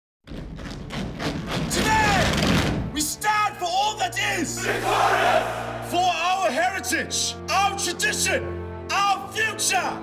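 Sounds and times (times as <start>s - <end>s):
rhythmic thuds: 0.2s - 3.0s.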